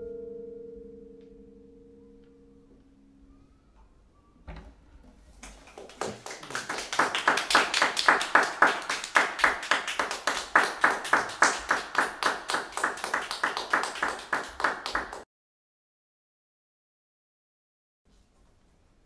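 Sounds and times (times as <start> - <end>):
audience clapping: 5.4 - 15.2.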